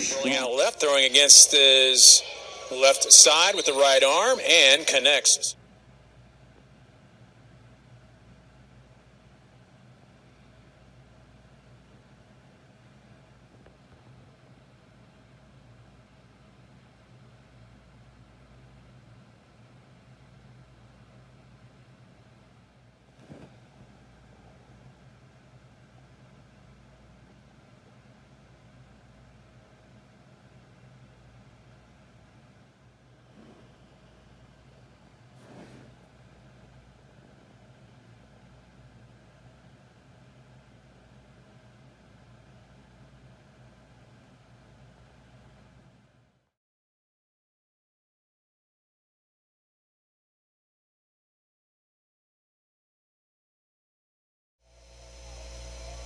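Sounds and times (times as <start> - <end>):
steady low hum: 0.0 - 46.2, 54.7 - 56.0.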